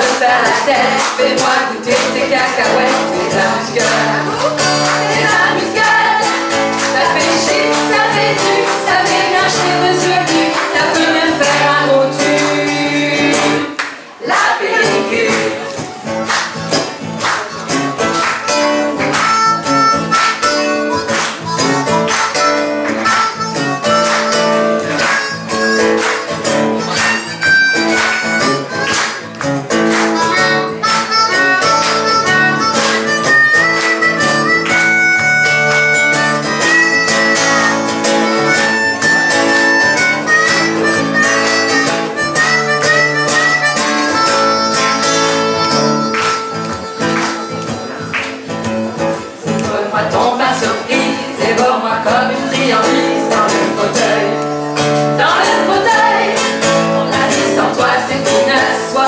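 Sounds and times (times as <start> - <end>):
harmonica melody: 0.0 - 15.3, 17.4 - 48.5, 50.8 - 59.0
strummed acoustic guitar: 0.0 - 59.0.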